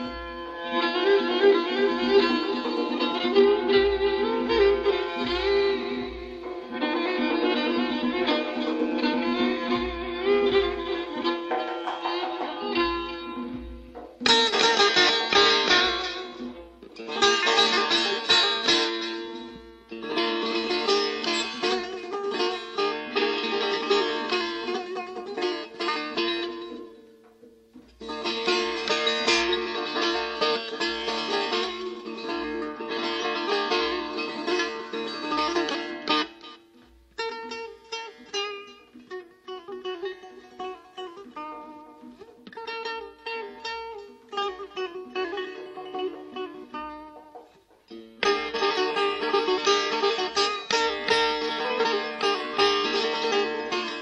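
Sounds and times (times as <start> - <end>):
plucked lute runs: 0.0 - 54.0.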